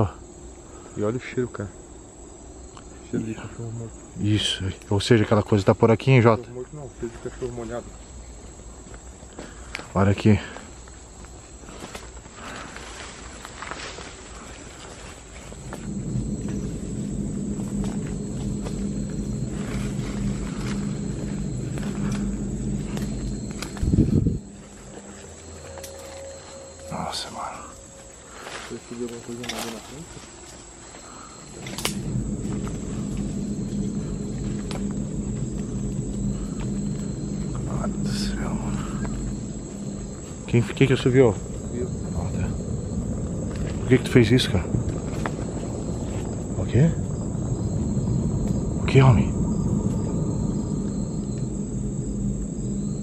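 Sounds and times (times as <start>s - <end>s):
scattered crackles: 10.9s - 53.0s
low ominous droning growl: 15.0s - 53.0s
sudden loud hit: 31.5s - 43.2s.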